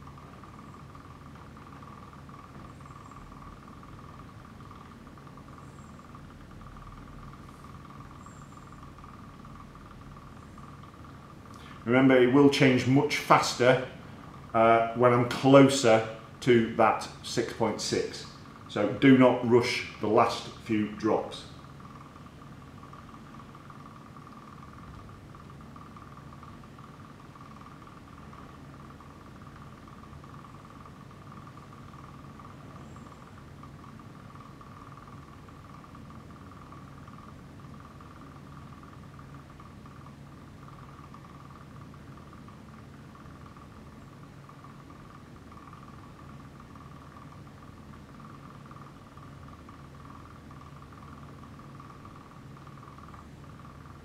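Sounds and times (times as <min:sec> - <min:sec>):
lab equipment humming: 0:00.0 - 0:54.0.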